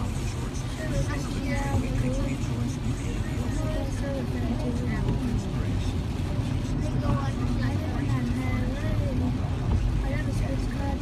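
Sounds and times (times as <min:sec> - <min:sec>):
car engine rumble: 0:00.0 - 0:11.0
tyres on wet road: 0:00.0 - 0:11.0.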